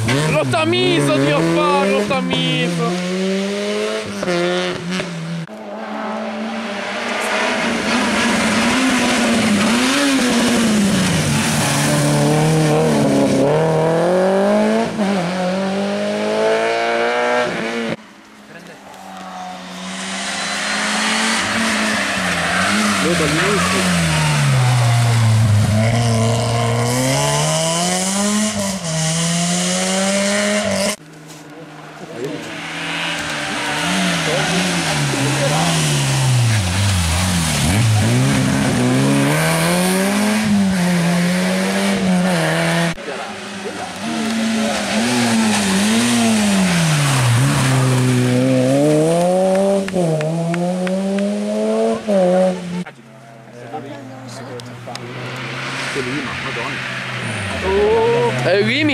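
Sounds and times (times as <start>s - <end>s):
rally car engines revving: 0.0s - 58.9s.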